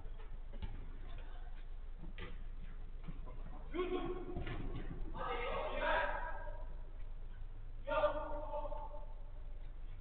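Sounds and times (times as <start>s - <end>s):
players' footsteps: 0.0s - 7.5s.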